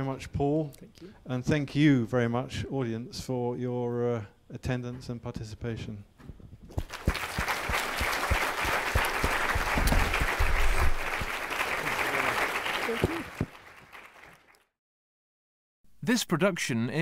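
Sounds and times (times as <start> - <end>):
audience applauding: 6.8 - 14.7.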